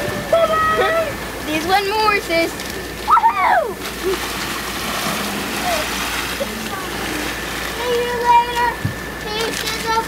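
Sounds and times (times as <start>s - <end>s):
water rushing along hull: 0.0s - 10.0s.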